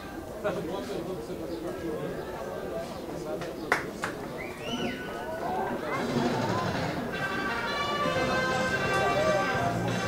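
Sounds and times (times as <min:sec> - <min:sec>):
music with held notes: 0:06.7 - 0:10.0.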